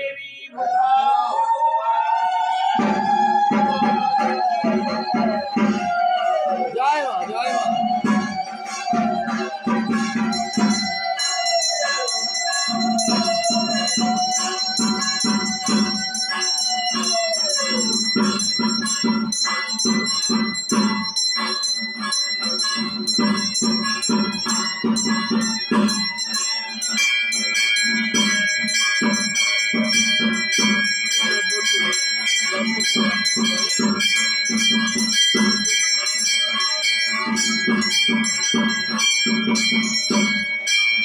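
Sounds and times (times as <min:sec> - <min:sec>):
drum beats: 0:01.6 - 0:41.0
bells ringing: 0:02.6 - 0:41.0.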